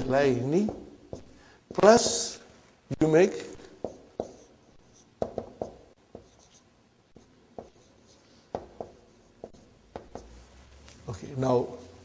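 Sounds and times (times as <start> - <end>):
marker writing on a whiteboard: 0.5 - 2.5, 3.5 - 10.5.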